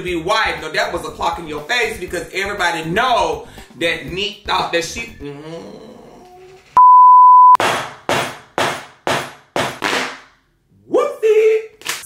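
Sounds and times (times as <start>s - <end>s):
censor bleep: 6.8s - 7.6s.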